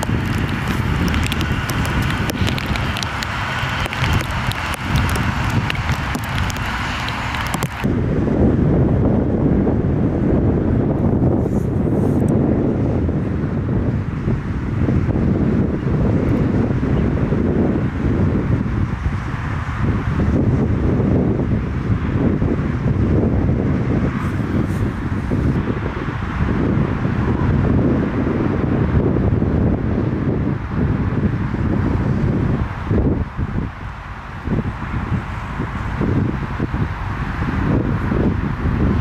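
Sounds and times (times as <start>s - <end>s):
distant jet engine rumble: 0.0s - 39.0s
wind buffeting microphone: 0.0s - 39.0s.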